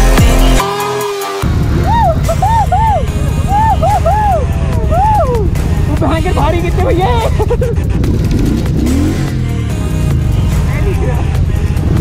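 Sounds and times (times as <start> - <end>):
motorcycle engines idling: 1.4 - 12.0.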